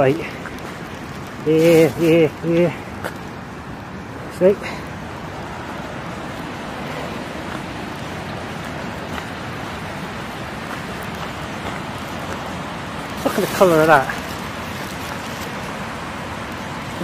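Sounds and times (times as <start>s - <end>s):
rain: 0.0s - 17.0s
river rushing: 0.0s - 17.0s
wind: 0.0s - 17.0s.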